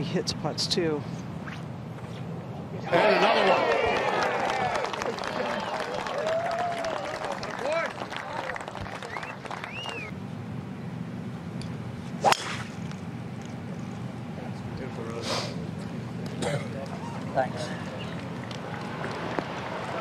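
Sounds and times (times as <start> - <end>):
crowd cheering and whistling: 2.9 - 7.8, 8.4 - 10.2
golf club striking ball: 12.2 - 13.0.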